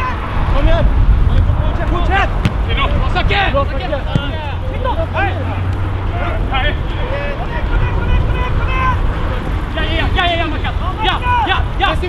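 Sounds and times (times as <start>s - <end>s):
players shouting: 1.7s - 12.0s.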